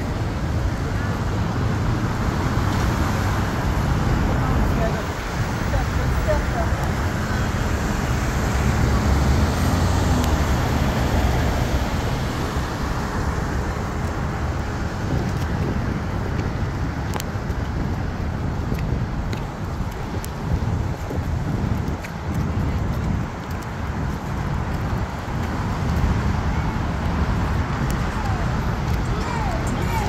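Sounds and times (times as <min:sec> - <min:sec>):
rumble of passing vehicles: 0:00.0 - 0:30.0.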